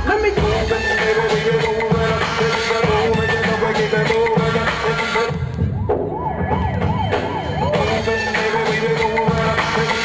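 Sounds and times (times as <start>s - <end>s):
dance music: 0.0s - 10.0s
siren wailing: 5.1s - 9.4s.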